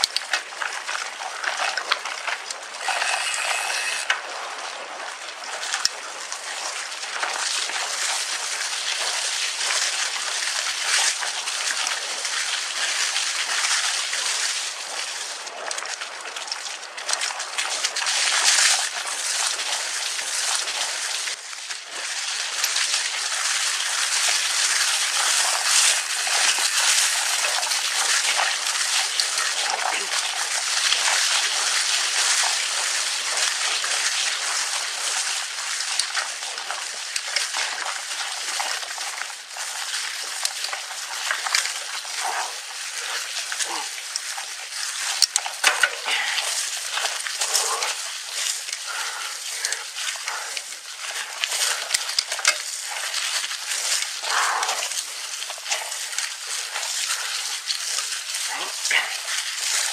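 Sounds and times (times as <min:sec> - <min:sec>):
bike tyres rolling over dry leaves: 0:00.0 - 0:59.9.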